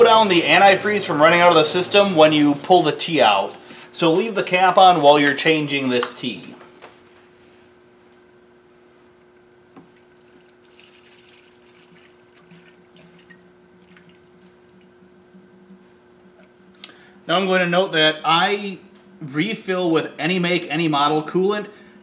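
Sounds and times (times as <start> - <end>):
liquid trickling into a tank: 9.8 - 15.2.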